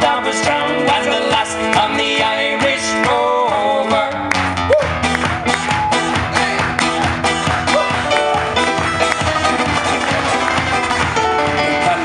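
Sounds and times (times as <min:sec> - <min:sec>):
acoustic guitars strumming folk: 0:00.0 - 0:12.0.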